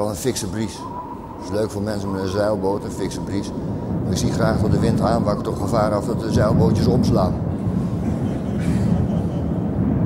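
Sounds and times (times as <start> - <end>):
strong wind blowing: 0.0 - 10.0.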